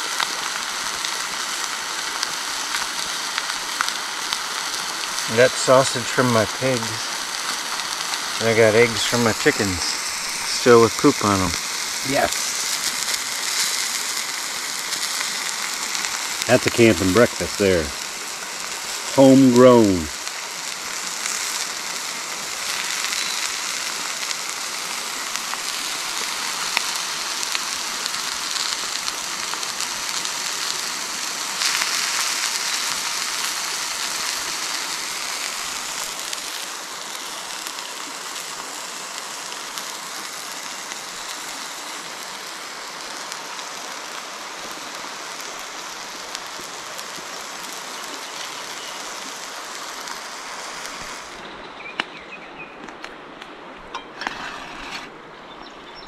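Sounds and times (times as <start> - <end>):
sausages sizzling in a skillet: 0.0 - 51.5.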